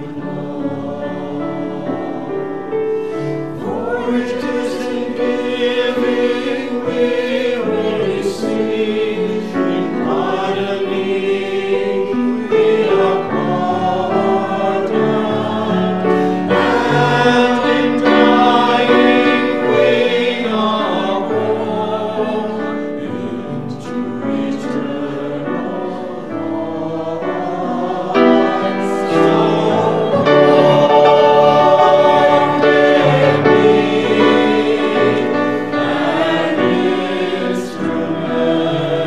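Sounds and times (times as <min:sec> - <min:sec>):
mixed choir singing: 0:00.0 - 0:39.0
piano: 0:00.0 - 0:39.0.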